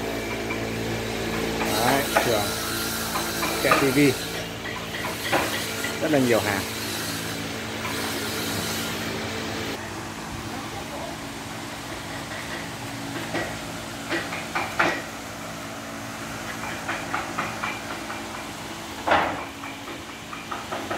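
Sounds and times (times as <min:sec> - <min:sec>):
machine hum with hiss: 0:00.0 - 0:20.9.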